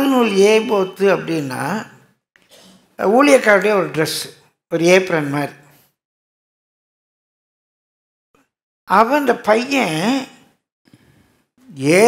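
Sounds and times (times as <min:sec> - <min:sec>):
man speaking: 0:00.0 - 0:02.0, 0:03.0 - 0:05.6, 0:08.9 - 0:10.4, 0:11.7 - 0:12.0.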